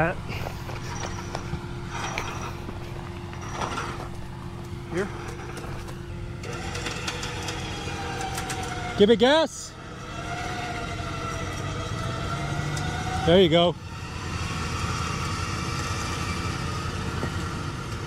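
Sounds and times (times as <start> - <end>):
high-pitched whine: 0.0 - 18.0
truck engine idling: 0.0 - 18.0.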